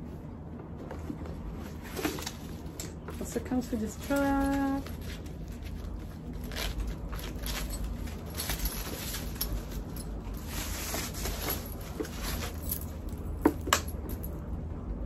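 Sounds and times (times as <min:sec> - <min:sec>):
wrapping rustling and crinkling: 0:00.9 - 0:13.6.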